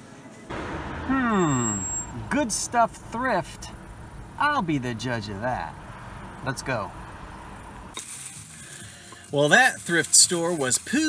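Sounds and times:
low rumble: 0:00.5 - 0:04.7.

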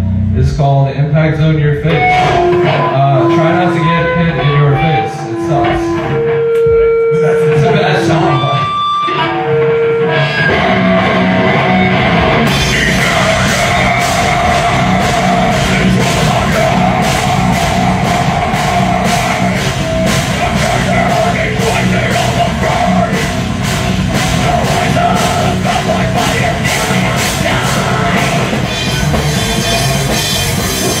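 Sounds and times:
driving drum beat: 0:00.0 - 0:08.7, 0:10.5 - 0:31.0
distorted guitars: 0:00.0 - 0:31.0
rock band playing: 0:00.0 - 0:31.0.

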